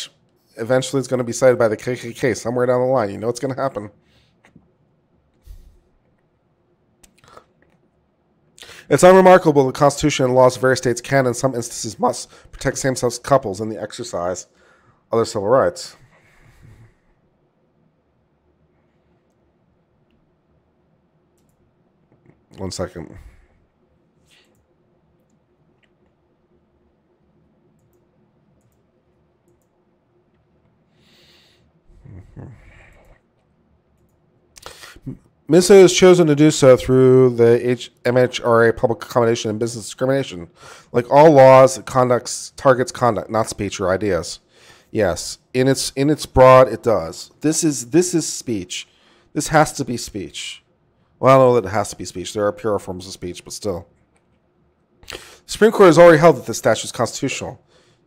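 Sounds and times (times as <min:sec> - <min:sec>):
man speaking: 0:00.0 - 0:04.0, 0:08.8 - 0:14.5, 0:15.1 - 0:16.0, 0:22.5 - 0:23.5, 0:35.0 - 0:53.9, 0:55.5 - 0:57.6
faint mouth noises: 0:31.9 - 0:33.4
man drawing a quick breath: 0:34.6 - 0:35.1, 0:55.1 - 0:55.5.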